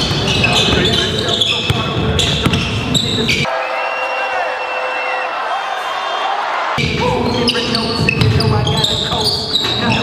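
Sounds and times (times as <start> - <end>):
basketball bouncing on gym floor: 0.0 - 3.2, 7.8 - 9.0
voices and court noise: 0.0 - 10.0.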